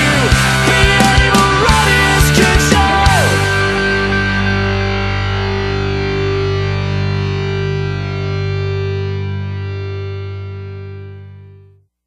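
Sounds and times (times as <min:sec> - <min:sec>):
distorted electric guitar chord ringing: 0:00.0 - 0:11.8.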